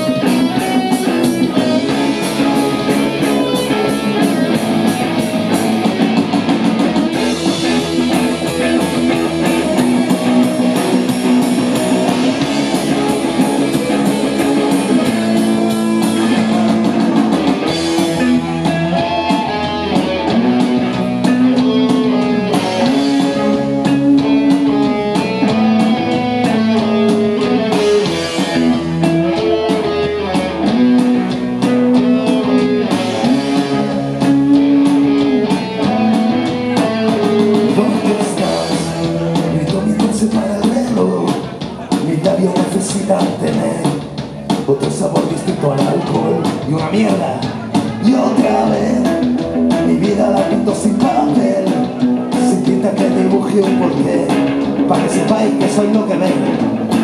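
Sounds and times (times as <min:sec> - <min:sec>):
bass guitar: 0:00.0 - 0:57.0
drum kit: 0:00.0 - 0:57.0
electric guitars melody: 0:00.0 - 0:57.0.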